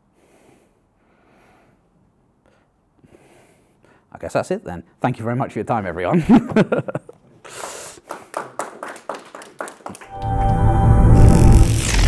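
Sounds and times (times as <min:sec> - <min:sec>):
soft breaths: 0:00.0 - 0:04.1.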